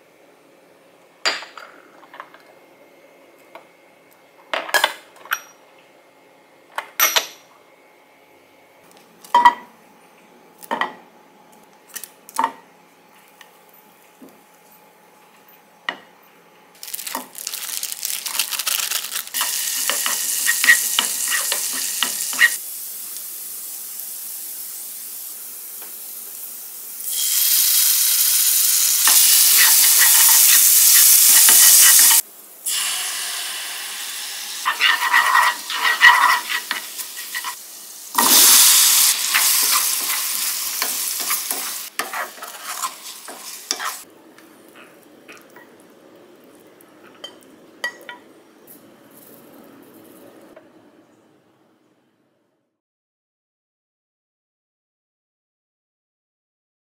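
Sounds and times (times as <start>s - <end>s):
garlic sizzling in a frying pan: 16.8s - 44.1s
spatula scraping and tapping pan: 34.7s - 37.6s, 40.8s - 44.0s.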